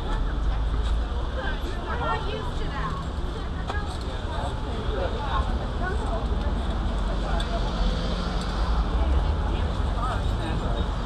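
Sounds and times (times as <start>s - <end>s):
low rumble of traffic: 0.0s - 11.0s
passers-by talking: 0.0s - 11.0s.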